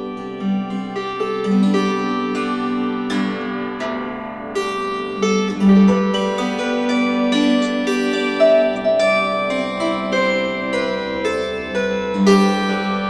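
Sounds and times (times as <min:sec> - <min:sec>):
plucked string melody: 0:00.0 - 0:13.0.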